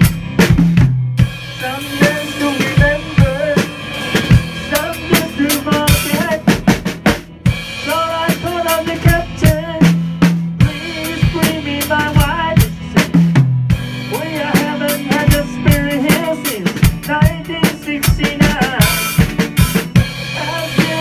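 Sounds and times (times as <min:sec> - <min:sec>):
bass line: 0:00.0 - 0:21.0
bending melody line: 0:00.0 - 0:21.0
drum kit beat: 0:00.0 - 0:21.0
electric guitar: 0:00.0 - 0:21.0.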